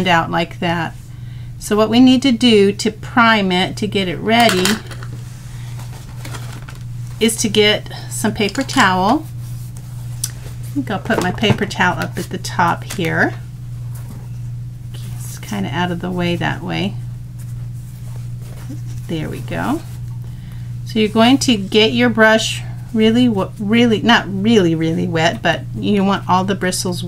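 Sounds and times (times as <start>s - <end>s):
steady low hum: 0.0s - 27.0s
paper towel rustling: 5.0s - 7.4s, 8.2s - 20.3s.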